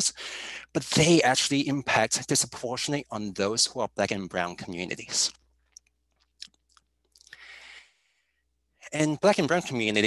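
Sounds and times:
person breathing in: 0.2 - 0.7, 7.3 - 8.4.

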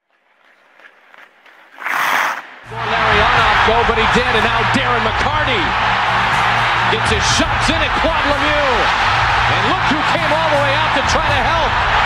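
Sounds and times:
arena crowd noise: 2.4 - 12.0.

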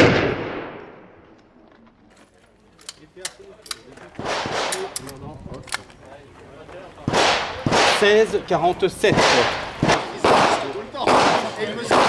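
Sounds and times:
pistol shot echo: 0.0 - 1.2, 7.1 - 8.2, 9.1 - 12.0
faint metallic clicks: 2.1 - 4.0.

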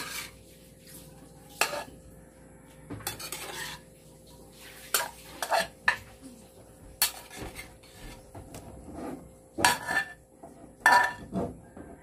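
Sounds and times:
metal spatula scraping a pan: 0.0 - 2.2, 3.0 - 6.2, 7.0 - 11.6.

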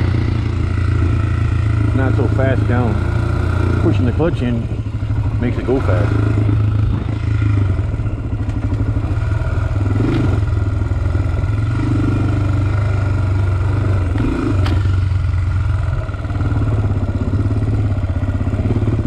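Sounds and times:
quad engine running at low revs: 0.0 - 19.0.

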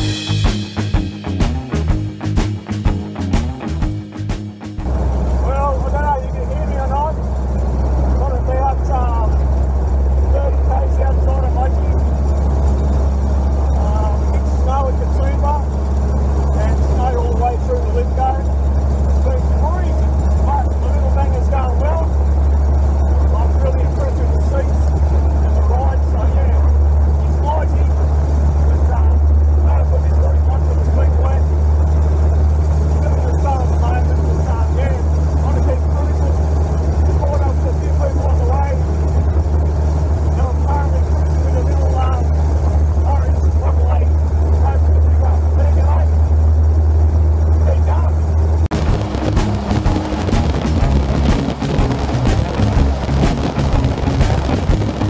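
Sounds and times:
car engine running: 0.0 - 55.0.

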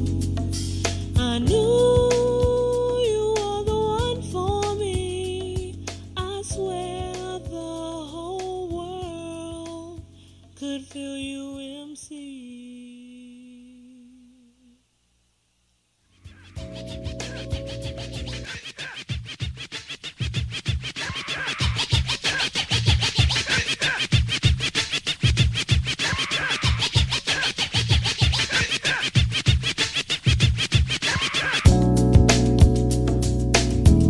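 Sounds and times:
steady drum beat: 0.0 - 7.8, 16.2 - 34.0
deep bass: 0.0 - 10.1, 31.7 - 34.0
turntable scratching: 16.2 - 34.0
hip-hop music: 16.3 - 34.0.

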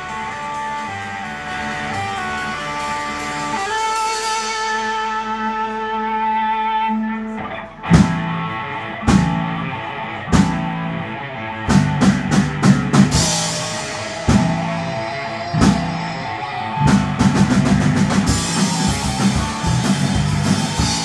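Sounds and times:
electric guitar chord ringing: 0.0 - 21.0
live rock band: 0.0 - 21.0
heavy drum hits: 11.7 - 21.0.

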